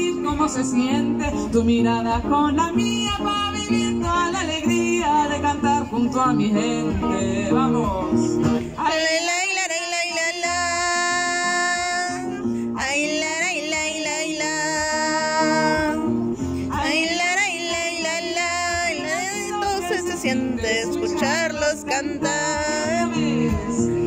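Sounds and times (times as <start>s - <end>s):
plucked acoustic guitar chords: 0.0s - 24.0s.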